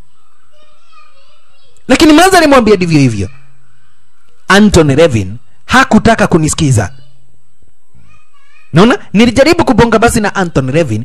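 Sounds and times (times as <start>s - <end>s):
faint high-pitched voice: 0.0s - 2.1s, 6.8s - 8.8s.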